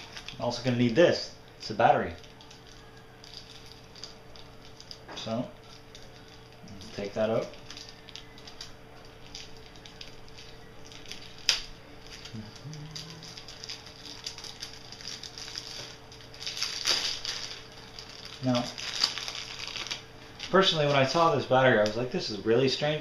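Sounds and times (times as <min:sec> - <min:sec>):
plastic packaging crinkling: 0:00.0 - 0:22.2.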